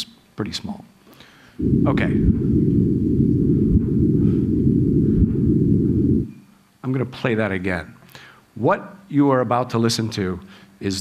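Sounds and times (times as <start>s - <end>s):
low rumbling noise: 1.6s - 6.6s.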